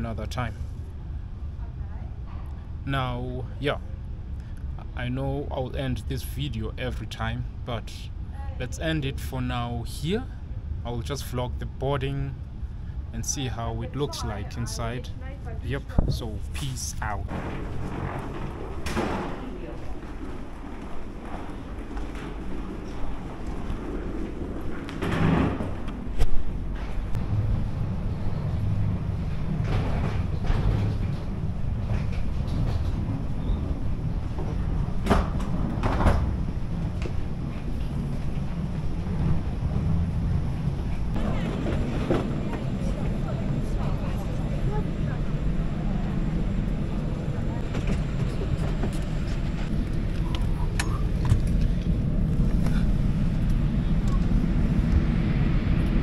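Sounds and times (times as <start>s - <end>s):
aircraft noise rumble: 0.0s - 56.0s.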